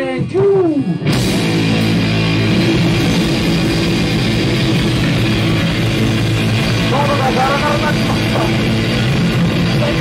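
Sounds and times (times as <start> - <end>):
distorted electric guitar: 0.0 - 10.0
drum kit: 0.0 - 10.0
electric bass: 0.0 - 10.0.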